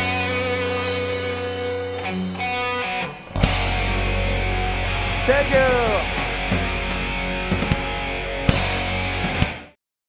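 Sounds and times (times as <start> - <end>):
distorted electric guitar: 0.0 - 9.8
live rock band: 0.0 - 9.8.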